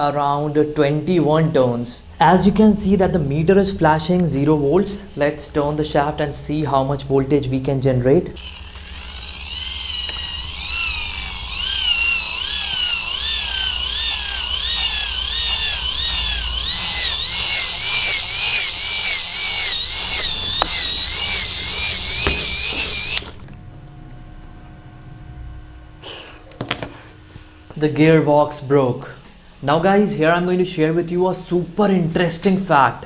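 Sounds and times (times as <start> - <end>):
motor and gears whining: 8.4 - 25.8.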